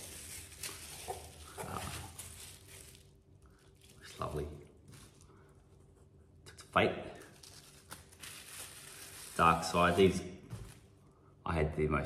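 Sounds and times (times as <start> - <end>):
bubble wrap crinkling: 0.0 - 6.2, 7.1 - 11.1.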